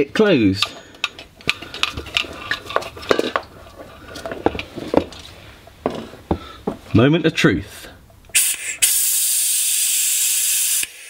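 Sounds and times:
metal tools clicking and knocking: 0:00.4 - 0:05.3.

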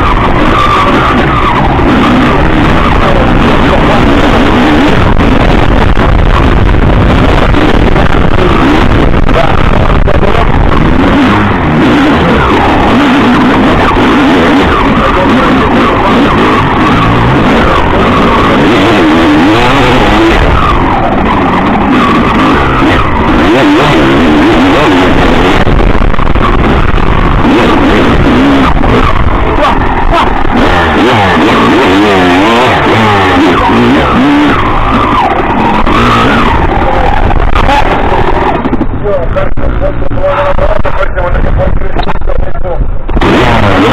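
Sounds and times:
motorcycle engine revving hard: 0:00.0 - 0:43.9.

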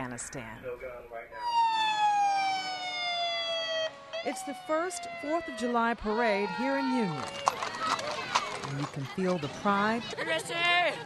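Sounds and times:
emergency siren wailing: 0:01.3 - 0:07.8.

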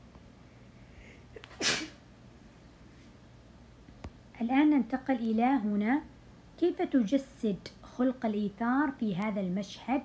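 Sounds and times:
person sneezing: 0:01.4 - 0:02.0.

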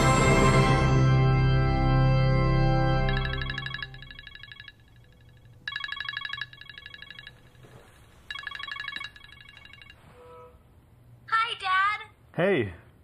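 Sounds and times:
phone ringtone trilling: 0:03.0 - 0:10.5.

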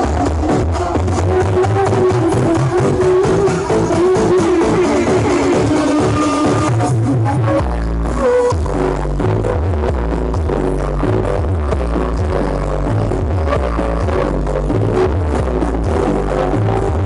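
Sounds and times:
dance music with heavy bass: 0:00.0 - 0:17.0.

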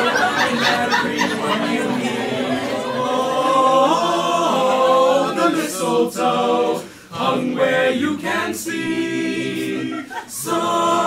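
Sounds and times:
choir singing long held notes: 0:00.0 - 0:11.0.

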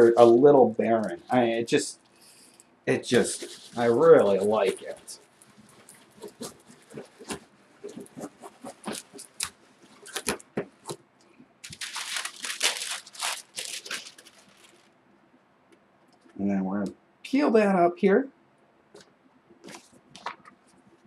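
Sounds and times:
paper rustling: 0:03.1 - 0:11.0, 0:11.6 - 0:14.9
baren scratching on paper: 0:03.4 - 0:09.6.

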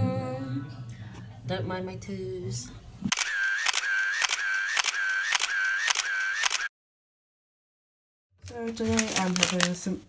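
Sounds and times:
sharp mechanical clicks: 0:03.1 - 0:06.7
short high whir: 0:03.2 - 0:06.7.

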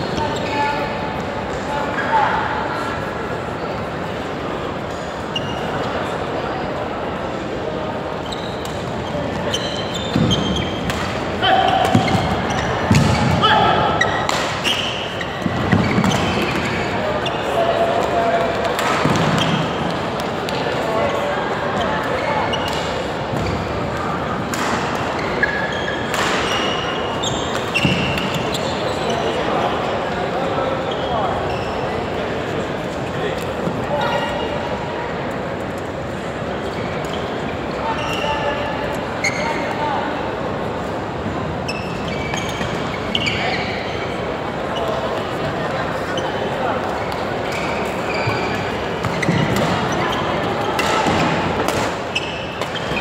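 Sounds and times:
court shoes squeaking: 0:00.0 - 0:06.4, 0:07.6 - 0:53.0.

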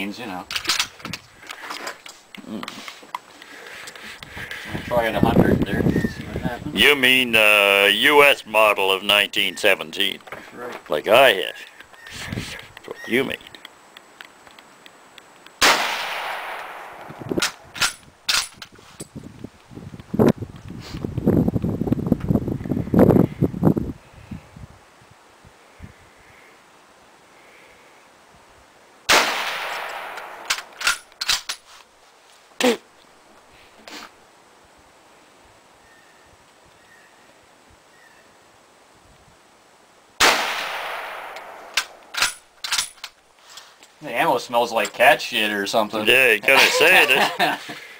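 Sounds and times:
rustling noise: 0:00.5 - 0:06.7, 0:11.7 - 0:15.4, 0:17.0 - 0:23.8, 0:30.4 - 0:34.2, 0:41.8 - 0:45.2
rifle shots with echo: 0:15.6 - 0:17.9, 0:29.1 - 0:31.0, 0:40.2 - 0:42.4.

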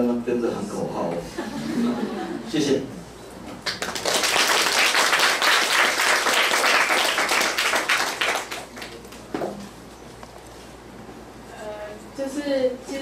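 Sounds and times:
audience applauding: 0:03.6 - 0:09.2.

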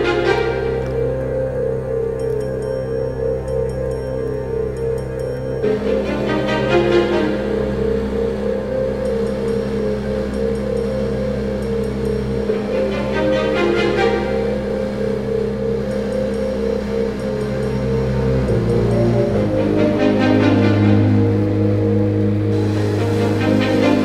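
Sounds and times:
suspenseful background music: 0:00.0 - 0:24.0.

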